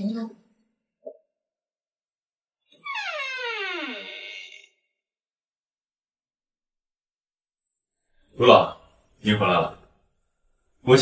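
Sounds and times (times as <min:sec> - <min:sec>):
wooden door creaking open: 0:02.7 - 0:04.7.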